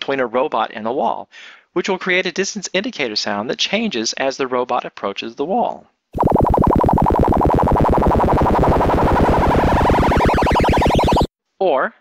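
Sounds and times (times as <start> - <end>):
rapid synthesizer pulsing: 6.2 - 11.3
rising wavering synth tone: 6.2 - 11.3.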